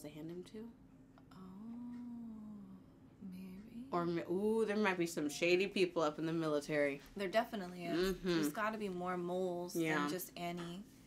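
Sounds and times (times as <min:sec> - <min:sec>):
woman humming: 0:01.3 - 0:03.9, 0:07.8 - 0:08.6.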